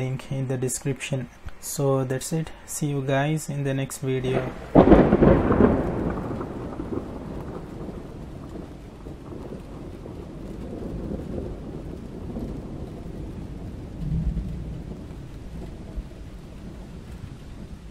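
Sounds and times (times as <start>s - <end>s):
steady hiss: 0.0s - 17.9s
low rumbling: 4.2s - 10.4s, 11.6s - 17.9s.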